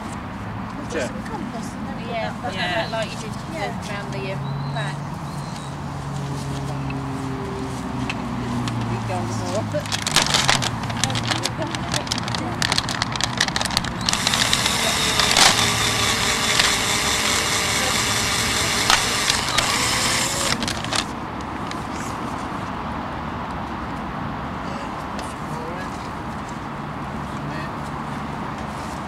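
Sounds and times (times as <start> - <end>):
cordless drill boring into wood: 9.9 - 21.1.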